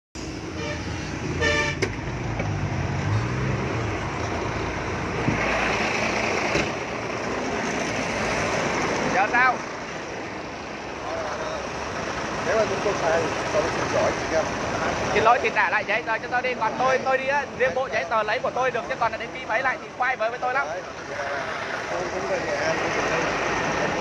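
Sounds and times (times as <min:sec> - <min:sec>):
road traffic noise: 0:00.2 - 0:24.0
short horn toot: 0:00.6 - 0:01.8
vehicle engine running: 0:03.4 - 0:15.6.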